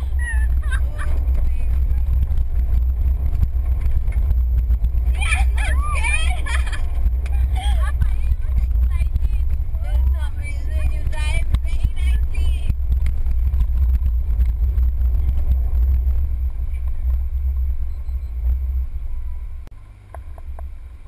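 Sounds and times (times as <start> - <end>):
car engine and road rumble: 0.0 - 21.0
people laughing: 5.2 - 8.5.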